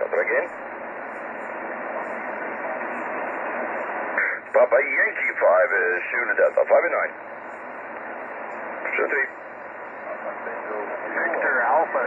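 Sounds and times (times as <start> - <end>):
voice over radio: 0.0 - 0.5, 4.2 - 7.2, 8.8 - 9.3, 10.0 - 12.0
radio static hiss: 0.0 - 12.0.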